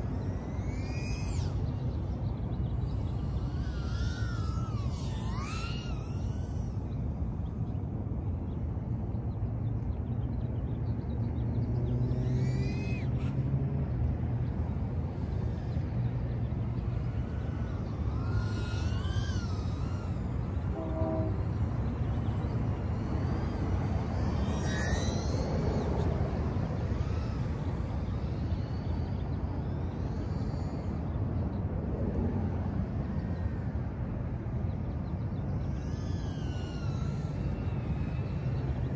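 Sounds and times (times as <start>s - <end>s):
drone motors whining: 0.0s - 38.9s.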